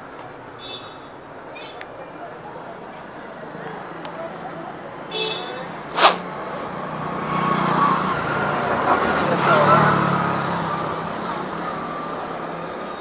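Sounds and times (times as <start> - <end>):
vehicle engine passing by: 5.7 - 12.8.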